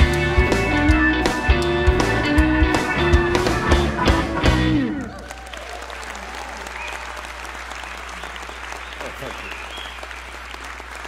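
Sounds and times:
audience applauding: 2.8s - 11.0s.

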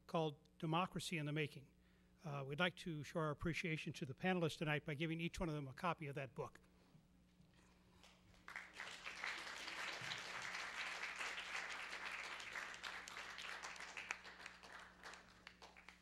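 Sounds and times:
audience applauding: 8.3s - 16.0s.

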